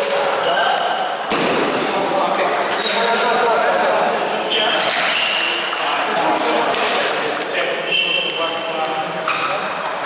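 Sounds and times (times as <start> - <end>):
chatter in a busy hall: 0.0 - 10.0
table tennis ball clicking: 5.3 - 10.0.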